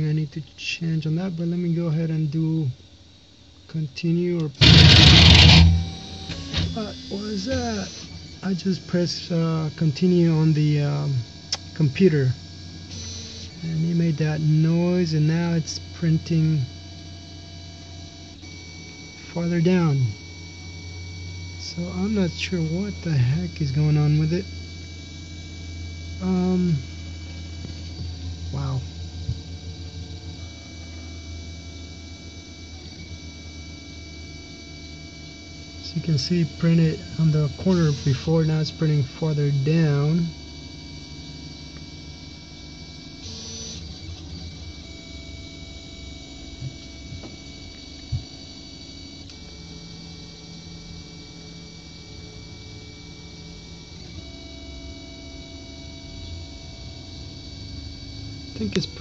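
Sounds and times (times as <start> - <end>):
three d printer hum and whine: 0.0 - 59.0
stepper motor tones: 4.1 - 59.0
stepper motors singing: 4.4 - 10.9, 35.7 - 40.3
low fan hum: 4.4 - 11.2.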